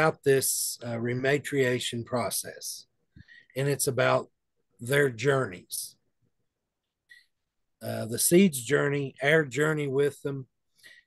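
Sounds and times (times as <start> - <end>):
man speaking: 0.0 - 6.1, 7.7 - 10.6.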